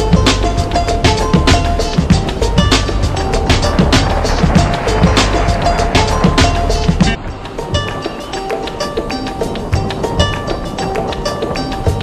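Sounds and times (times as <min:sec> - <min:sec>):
music with drums: 0:00.0 - 0:12.0.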